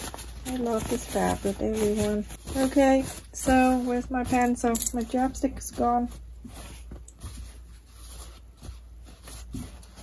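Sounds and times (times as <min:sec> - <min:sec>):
fabric rustling: 0:00.0 - 0:10.0.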